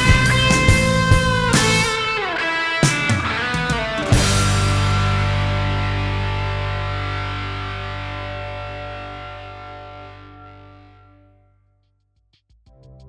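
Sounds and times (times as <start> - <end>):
rock music: 0.0 - 11.3
distorted electric guitar chord: 0.0 - 11.5.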